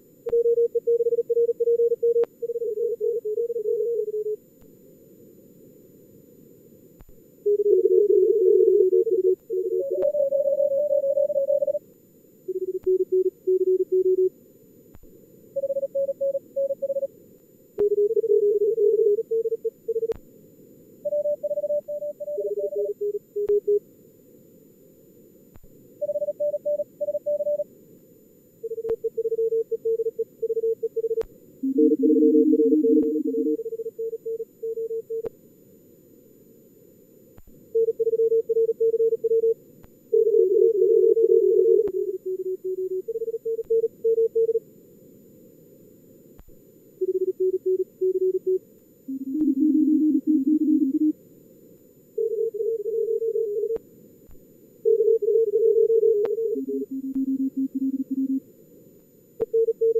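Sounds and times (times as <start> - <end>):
receiver noise hiss: 0.0 - 59.9
morse code tones: 7.5 - 11.8, 12.5 - 14.3, 21.1 - 23.8, 26.0 - 27.6, 28.7 - 35.2, 40.2 - 44.6, 47.0 - 51.1, 54.9 - 58.4.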